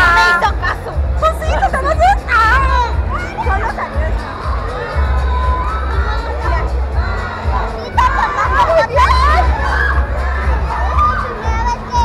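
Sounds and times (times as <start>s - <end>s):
crowd shouting and cheering: 0.0s - 12.0s
deep bass of background music: 0.0s - 12.0s.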